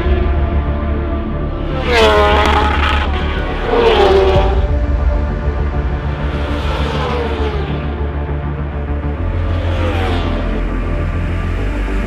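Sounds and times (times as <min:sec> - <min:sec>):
background music: 0:00.0 - 0:12.0
racing motorcycle passing by: 0:01.6 - 0:04.8, 0:06.1 - 0:12.0.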